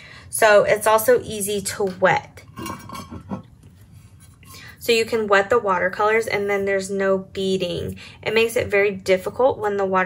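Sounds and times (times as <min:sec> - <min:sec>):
woman talking: 0:00.3 - 0:02.5, 0:04.6 - 0:10.0.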